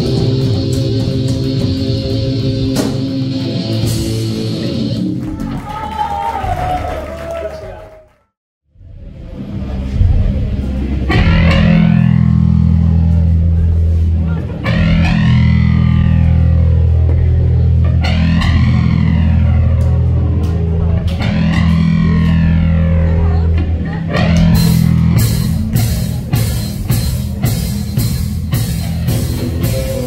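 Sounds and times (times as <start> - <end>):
sweeping guitar effect: 0.0 - 5.2, 8.8 - 30.0
drums and cymbals: 0.0 - 5.7, 24.2 - 30.0
distorted electric guitar and bass: 0.0 - 5.8, 8.8 - 30.0.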